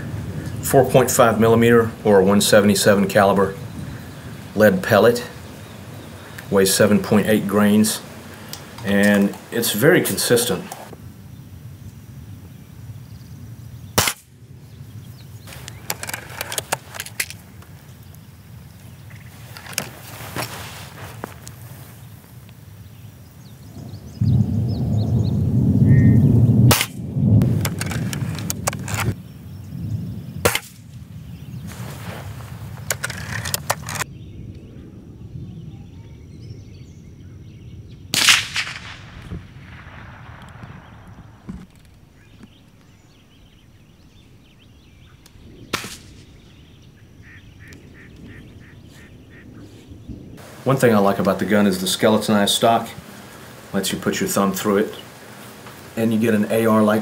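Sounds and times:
air rifle snaps and clicks: 8.5s - 9.4s, 15.5s - 17.4s
echoing rifle crack: 14.0s - 14.4s, 26.7s - 29.2s, 30.4s - 31.0s, 38.1s - 49.4s
quiet air rifle shot: 14.0s - 14.4s, 26.7s - 29.1s, 30.4s - 31.0s, 38.1s - 46.8s.

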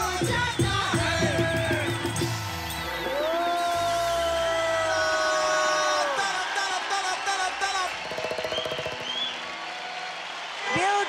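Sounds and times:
band music: 0.0s - 10.1s
audience clapping and cheering: 0.0s - 11.0s.

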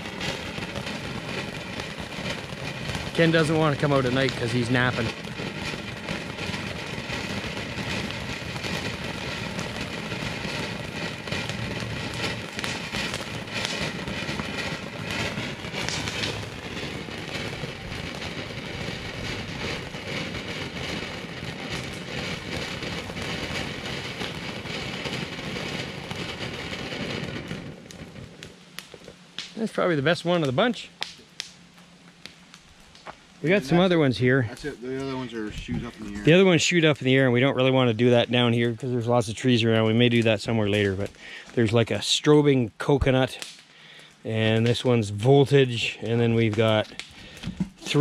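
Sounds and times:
firework crackling hiss: 0.0s - 48.0s.

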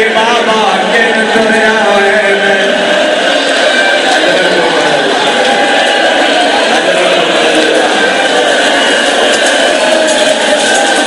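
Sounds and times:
man chanting over loudspeaker: 0.0s - 2.9s, 4.0s - 5.3s, 6.5s - 8.5s.

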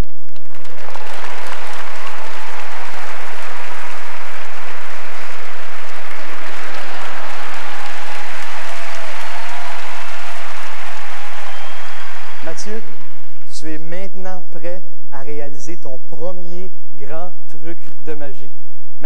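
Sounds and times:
audience applauding: 0.0s - 13.5s.

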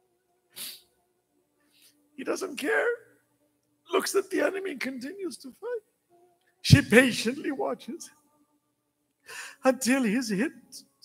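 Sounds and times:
soft inhale: 9.2s - 9.6s
man sobbing catch of breath: 9.3s - 9.7s.

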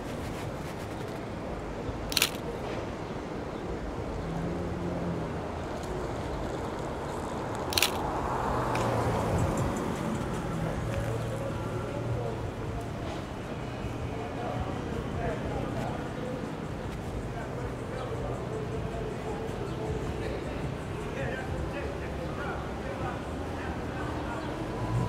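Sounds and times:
city street noise: 0.0s - 25.0s
camera shutter clicks: 2.1s - 2.4s, 7.7s - 8.1s.

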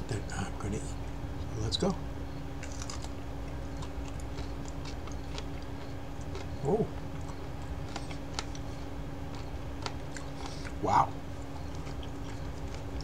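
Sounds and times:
steady low hum: 0.0s - 13.0s
crunching of chili pepper: 2.6s - 13.0s.

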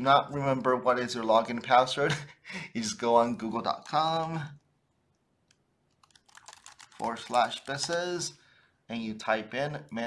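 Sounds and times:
computer keyboard typing: 5.5s - 8.4s.

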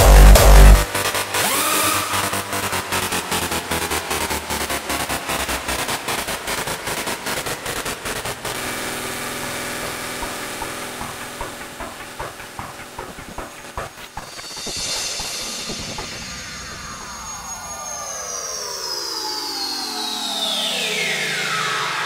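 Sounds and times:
hardstyle dance music: 0.0s - 17.6s.

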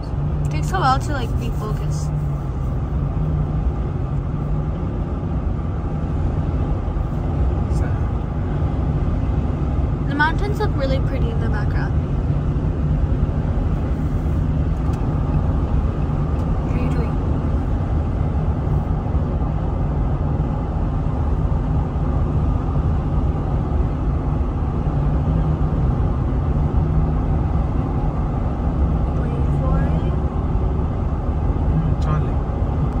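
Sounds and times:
car interior road noise: 0.0s - 33.0s.

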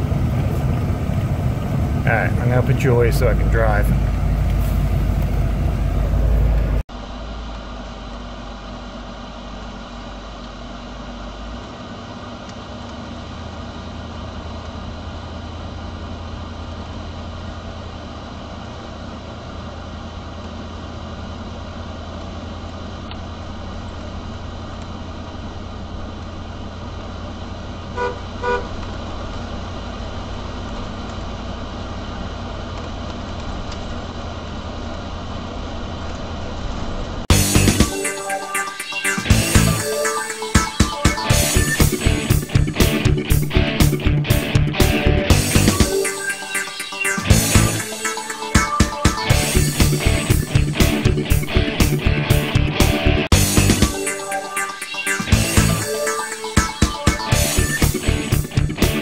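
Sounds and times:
engine and road drone: 0.0s - 59.0s
car horn toots: 27.9s - 28.8s.

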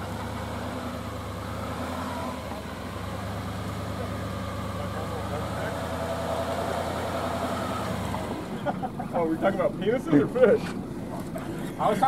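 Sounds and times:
truck engine humming: 0.0s - 12.0s.

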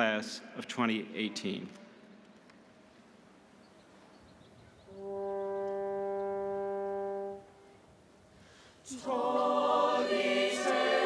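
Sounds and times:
choir singing: 8.8s - 11.0s.

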